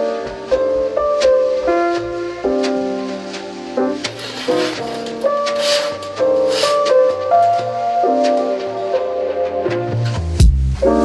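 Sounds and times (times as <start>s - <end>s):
keyboard chords: 0.0s - 11.0s.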